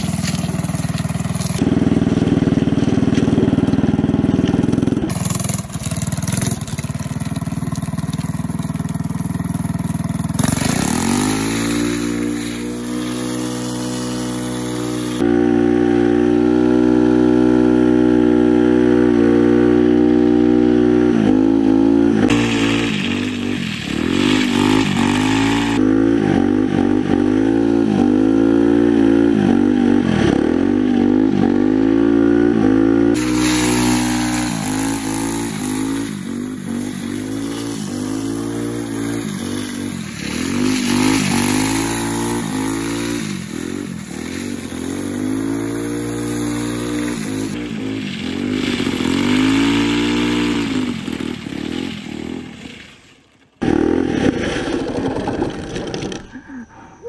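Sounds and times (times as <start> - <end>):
metal sleeves scraping on asphalt: 0.0 - 15.2, 22.3 - 25.8, 33.2 - 56.4
go-kart engine at high revs: 0.0 - 52.9, 53.6 - 56.3.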